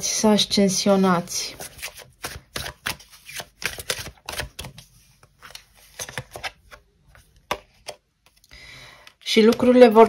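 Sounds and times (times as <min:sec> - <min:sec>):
cards being shuffled: 0:01.5 - 0:08.4.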